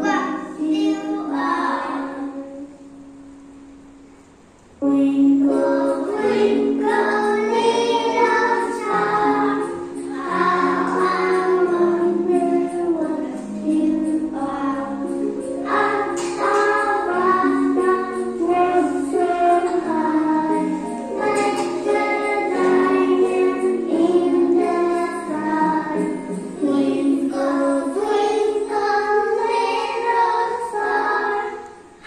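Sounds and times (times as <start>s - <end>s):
children and woman singing: 0.0s - 3.0s, 4.8s - 32.0s
instrumental backing: 0.0s - 32.0s
musical accompaniment: 0.0s - 32.0s.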